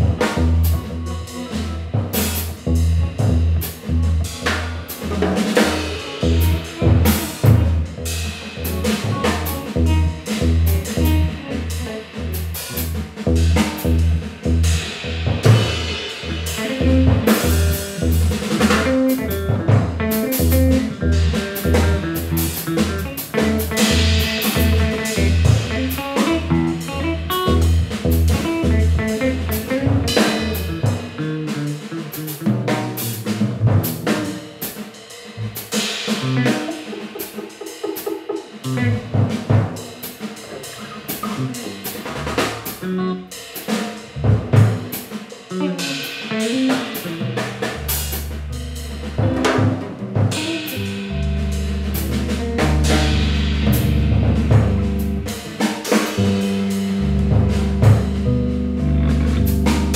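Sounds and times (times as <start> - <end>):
electric bass: 0.0 - 34.7, 35.4 - 37.5, 38.5 - 43.4, 44.0 - 59.9
electric guitar: 0.0 - 34.7, 35.7 - 43.5, 44.6 - 59.9
busy drumming: 0.0 - 59.9.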